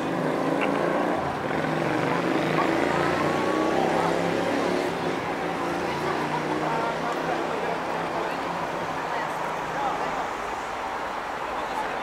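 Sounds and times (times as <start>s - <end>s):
vehicle engines passing: 0.0s - 12.0s.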